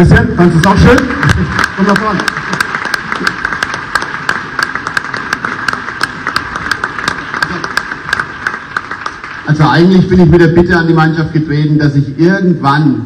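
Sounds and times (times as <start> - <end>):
group clapping: 0.0 - 11.2.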